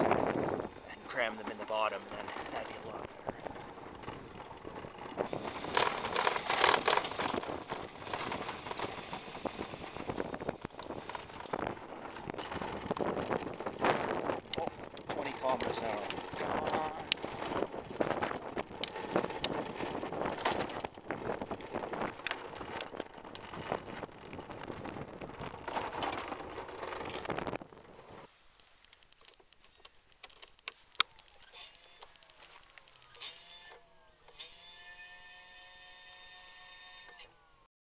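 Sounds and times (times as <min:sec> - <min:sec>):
wind buffeting microphone: 0:00.0 - 0:28.3
tyre noise on asphalt: 0:00.0 - 0:33.8
scooter frame rattling: 0:00.0 - 0:37.5
electric motor whining: 0:02.7 - 0:25.6, 0:31.4 - 0:37.6.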